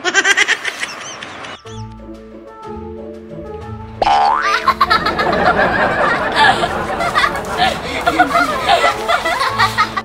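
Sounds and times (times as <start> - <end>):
girl laughing: 0.0 - 1.3, 4.4 - 10.0
background music: 1.6 - 10.0.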